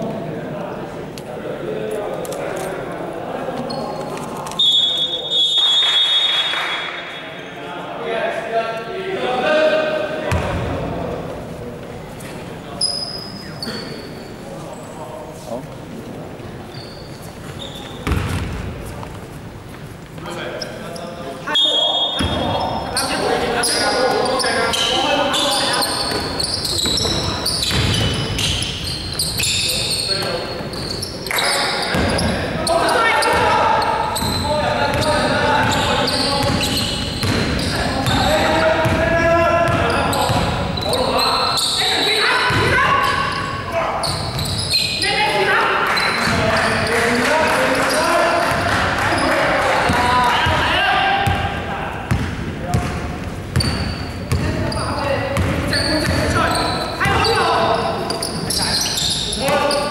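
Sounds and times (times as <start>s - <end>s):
voices echoing in a hall: 0.0s - 59.9s
sneakers squeaking: 3.5s - 7.6s, 10.3s - 15.0s, 15.6s - 59.9s
referee's whistle blast: 4.6s - 7.0s
basketball bouncing on court: 10.3s - 10.7s, 18.0s - 18.7s, 22.2s - 22.6s, 26.1s - 29.4s, 31.9s - 32.4s, 34.2s - 40.6s, 42.5s - 42.8s, 49.8s - 57.4s
basketball bouncing: 18.0s - 18.6s, 26.1s - 28.5s, 36.4s - 38.2s, 52.1s - 54.6s, 55.4s - 56.4s
players calling out: 20.4s - 59.9s.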